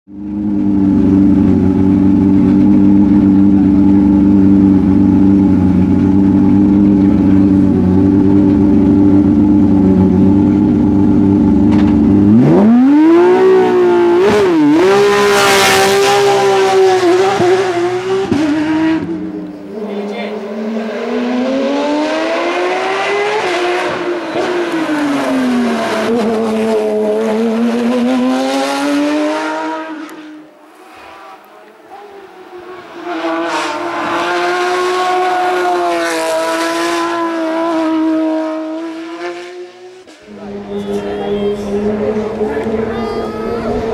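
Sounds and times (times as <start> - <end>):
race car engine revving: 0.2 - 43.9.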